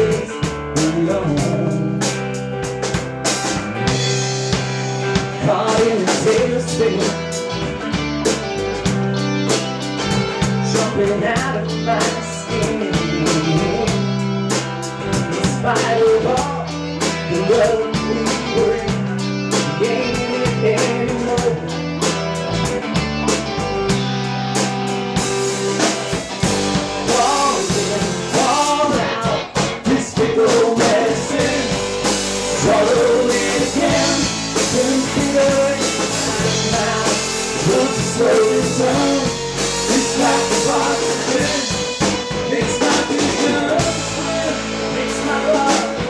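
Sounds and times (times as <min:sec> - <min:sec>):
bass guitar: 0:00.0 - 0:46.0
drums and cymbals: 0:00.0 - 0:46.0
electric guitars: 0:00.0 - 0:46.0.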